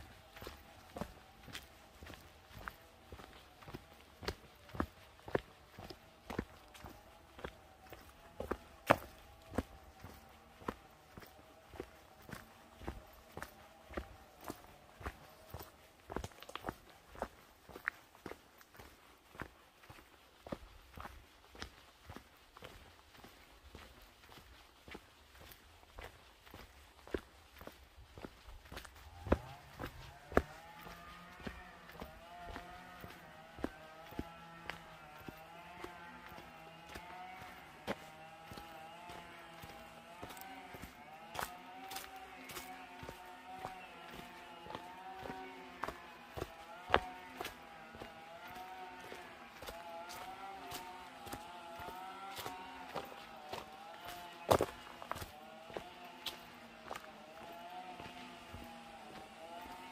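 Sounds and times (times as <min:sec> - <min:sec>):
footsteps on gravel: 0:00.0 - 0:59.9.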